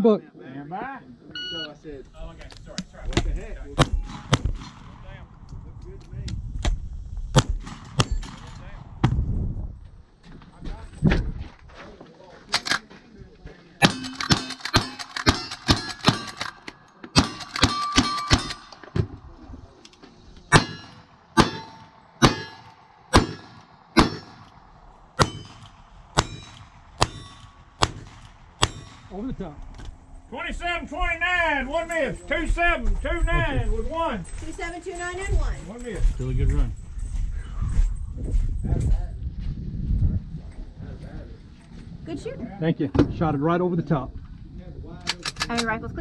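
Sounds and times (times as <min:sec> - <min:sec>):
rifle shots: 0:03.8 - 0:05.0, 0:07.3 - 0:08.8, 0:13.8 - 0:18.9, 0:20.5 - 0:29.2
struck steel ringing: 0:13.8 - 0:19.0, 0:20.5 - 0:29.3.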